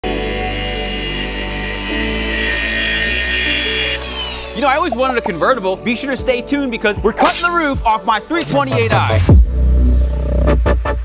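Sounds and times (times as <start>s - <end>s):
angle grinder cutting sheet metal: 0.0s - 5.8s
background music: 0.0s - 11.0s.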